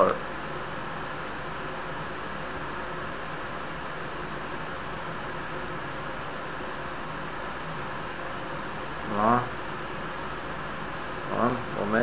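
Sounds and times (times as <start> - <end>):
steady background hiss: 0.0 - 12.0.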